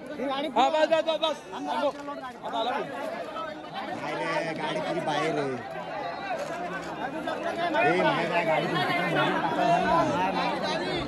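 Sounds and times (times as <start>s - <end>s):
crowd of men talking: 0.0s - 11.0s.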